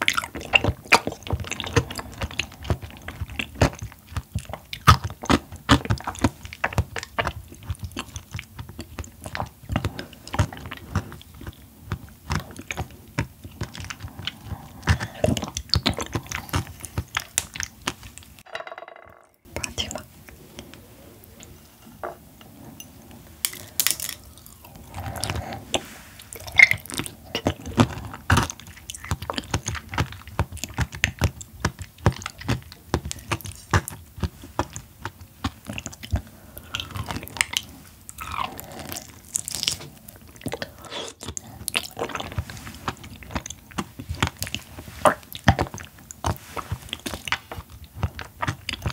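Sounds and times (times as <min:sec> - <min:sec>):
wet chewing and lip smacking: 0:00.0 - 0:18.4, 0:23.6 - 0:48.9.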